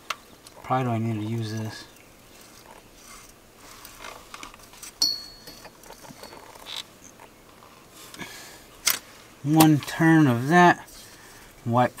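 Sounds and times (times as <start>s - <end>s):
ringing metallic clink: 5.0s - 6.6s.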